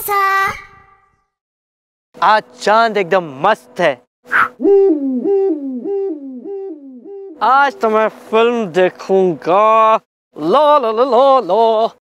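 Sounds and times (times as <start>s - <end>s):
owl-like hooting: 4.3s - 8.2s.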